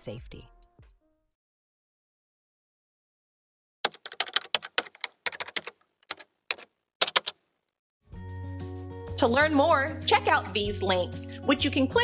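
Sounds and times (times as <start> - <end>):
keyboard typing: 3.8 - 7.4.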